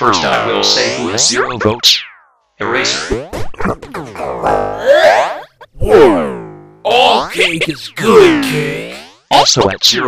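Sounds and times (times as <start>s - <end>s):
cartoon voice with pitch effect: 3.7s - 9.2s.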